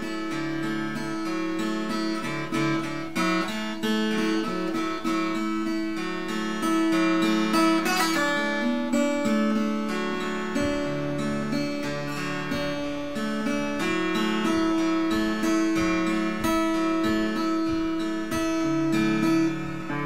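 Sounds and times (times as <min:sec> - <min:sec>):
fingerpicked acoustic guitar: 0:00.0 - 0:20.0.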